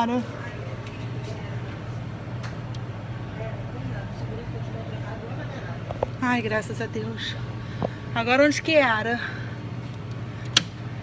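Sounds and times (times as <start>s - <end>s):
air conditioning hum: 0.0s - 11.0s.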